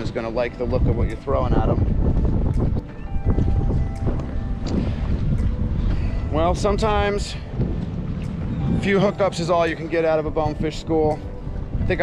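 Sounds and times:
faint background music: 0.0s - 12.0s
wind buffeting microphone: 0.0s - 12.0s.

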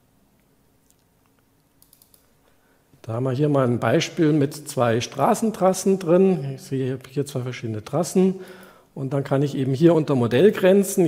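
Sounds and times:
faint computer clicks: 0.9s - 2.3s.

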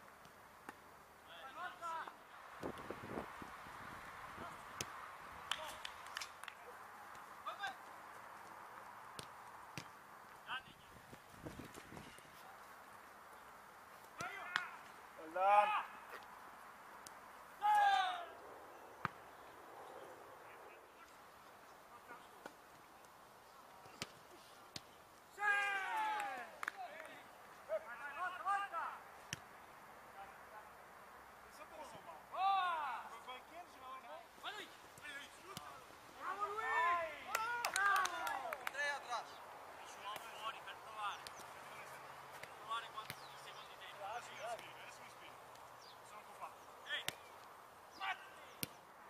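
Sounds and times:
players shouting: 14.2s - 16.1s, 17.6s - 18.4s, 25.3s - 29.0s, 34.5s - 39.3s.

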